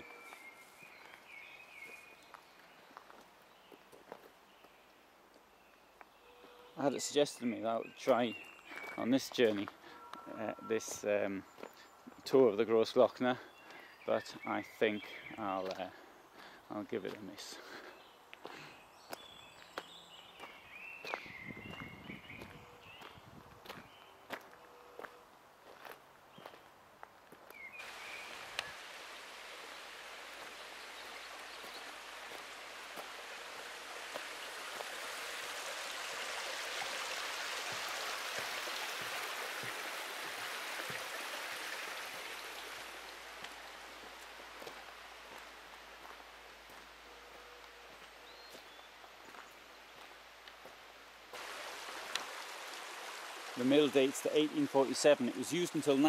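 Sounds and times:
footsteps on gravel: 16.4s - 27.6s, 43.4s - 47.0s, 48.0s - 51.6s
stream water running: 27.5s - 56.0s.

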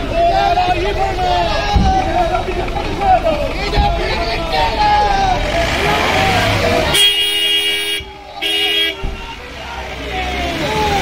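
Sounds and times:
crowd voices: 0.0s - 11.0s
street traffic: 0.0s - 11.0s
vehicle horn blasts: 6.9s - 9.2s.

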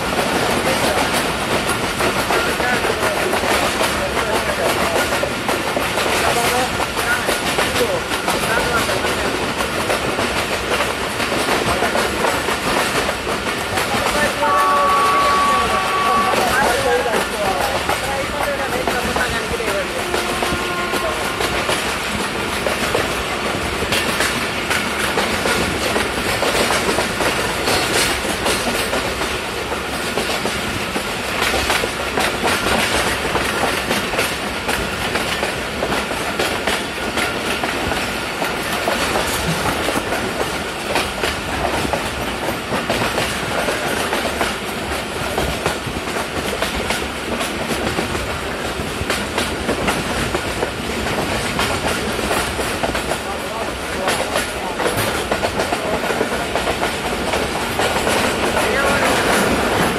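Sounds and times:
clickety-clack over rail joints: 0.0s - 59.9s
train wheels rumbling on track: 0.0s - 59.9s.

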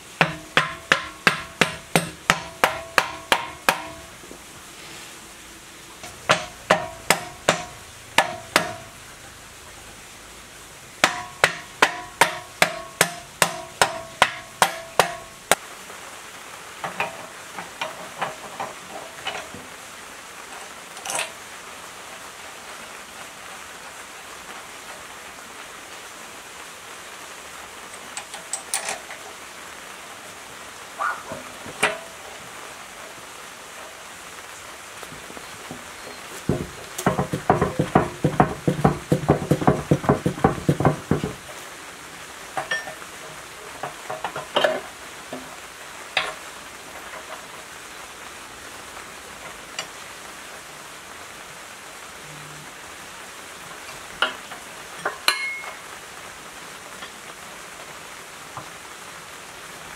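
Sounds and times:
hammer striking metal: 0.2s - 4.1s, 6.0s - 8.9s, 11.0s - 15.3s, 36.5s - 41.4s, 55.3s - 55.8s
metal parts clinking: 28.2s - 29.1s.

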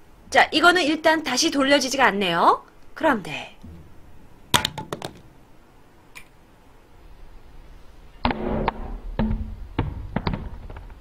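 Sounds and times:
phone clattering on hard surface: 4.6s - 5.2s.

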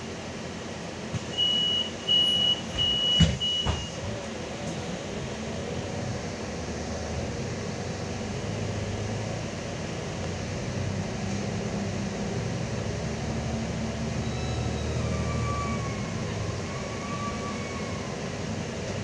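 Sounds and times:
bus running noise: 0.0s - 19.0s
high electronic beep: 1.4s - 4.0s.

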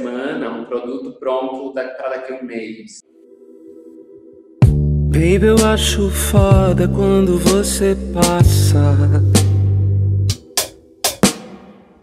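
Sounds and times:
song with bass and chords: 3.5s - 11.8s
sharp drum hits: 11.1s - 12.0s.

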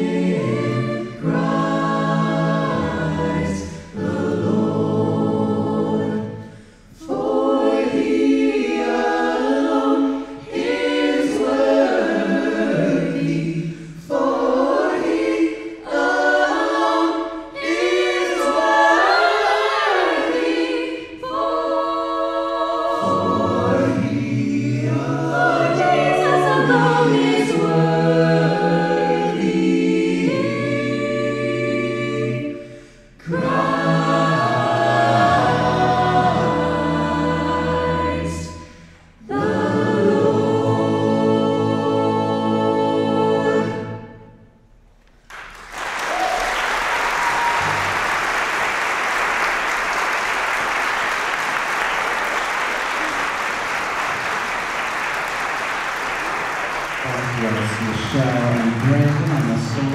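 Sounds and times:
a cappella group singing in harmony: 0.0s - 45.2s, 57.0s - 59.9s.

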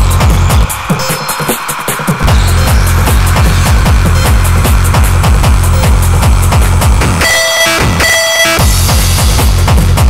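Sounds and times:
synth layers: 0.0s - 8.6s
electronic dance music: 0.0s - 10.0s
pounding kick drum and bass: 0.0s - 10.0s.

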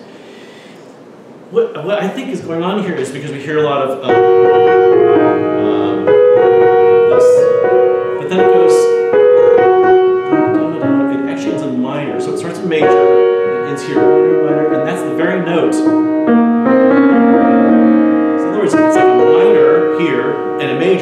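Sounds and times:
slow keyboard chords: 3.6s - 21.0s.

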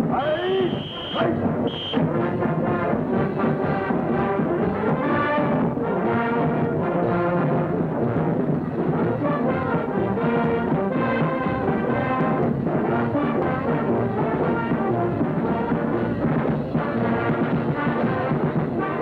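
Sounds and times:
brass band playing a march: 0.0s - 19.0s
drill command called out: 0.1s - 1.4s.

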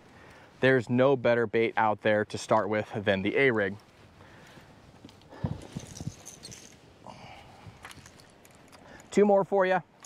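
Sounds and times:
faint rattles: 5.1s - 6.8s.

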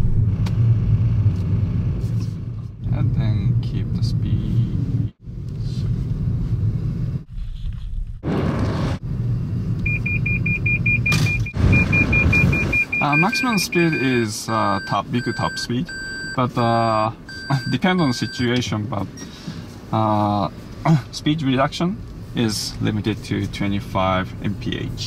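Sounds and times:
road and tyre rumble in car: 0.0s - 14.0s, 16.3s - 25.0s
rapid high-pitched beeping: 11.8s - 18.5s.

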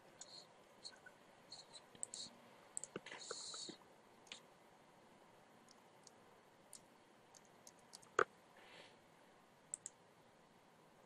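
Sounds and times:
mouse and keyboard clicks: 5.7s - 8.3s, 9.7s - 10.0s.

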